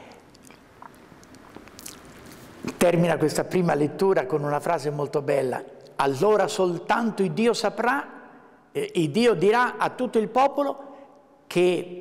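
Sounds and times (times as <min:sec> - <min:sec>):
mouth clicks and lip smacks: 0:00.1 - 0:02.8.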